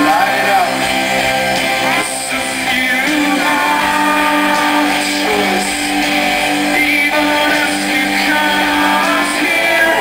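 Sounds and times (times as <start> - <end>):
live rock band playing: 0.0 - 10.0
sustained electric guitar chords: 0.0 - 10.0.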